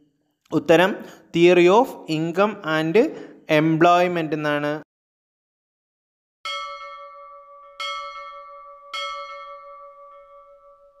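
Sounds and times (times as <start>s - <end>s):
bell ringing: 6.5s - 11.0s.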